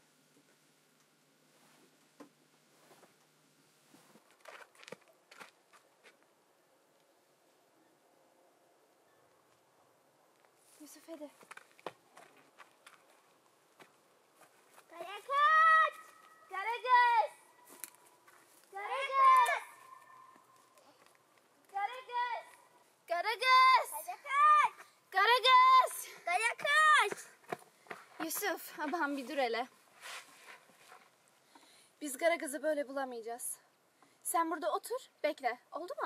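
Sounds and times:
faint footsteps: 3.9 - 6.4, 10.3 - 23.7, 24.7 - 31.7
woman and boy calling out: 15.0 - 17.5, 18.8 - 20.4, 21.7 - 27.3.

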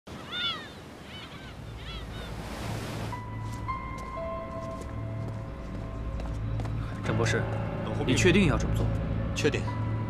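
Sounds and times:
gulls calling: 0.1 - 3.4
sea waves washing: 0.1 - 3.7.

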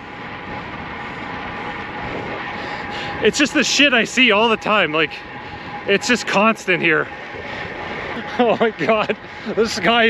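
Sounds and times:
bicycle tyre noise on asphalt: 0.0 - 10.0
wind rushing: 0.0 - 10.0.

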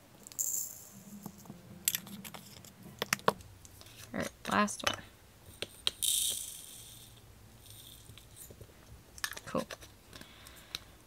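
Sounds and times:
rhinestones pouring rattle: 0.3 - 1.2, 6.0 - 8.5.

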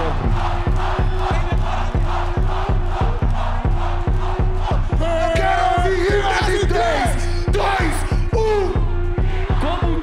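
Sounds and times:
bass-heavy rap beat: 0.0 - 10.0
crowd shouting and chanting: 0.0 - 10.0.

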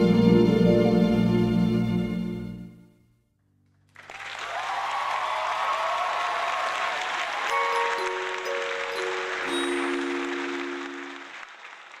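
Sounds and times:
audience applauding: 3.8 - 12.0
held song chord: 7.5 - 11.4.

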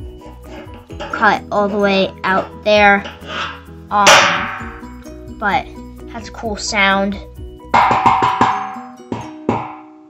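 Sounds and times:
metal satellite dish clanging: 0.0 - 5.1, 7.7 - 10.0.

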